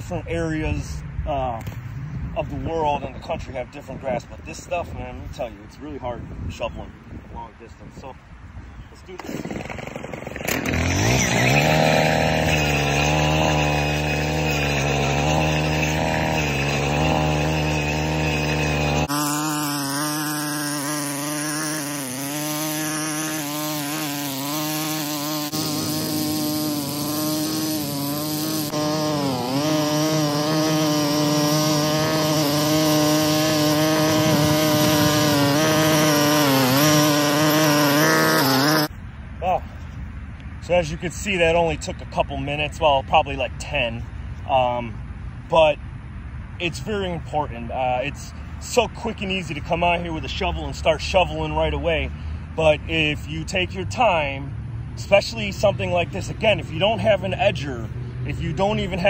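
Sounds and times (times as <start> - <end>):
edger engine running: 9.1 - 38.9
blade slicing through turf: 10.5 - 38.9.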